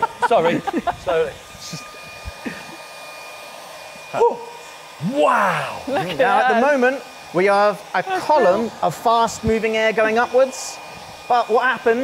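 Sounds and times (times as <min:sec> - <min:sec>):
hair dryer blowing air: 0:00.0 - 0:12.0
high motor whine: 0:00.0 - 0:12.0.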